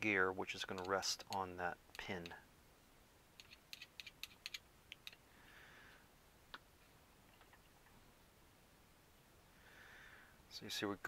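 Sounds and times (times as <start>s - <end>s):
soft hiss: 0.0s - 11.0s.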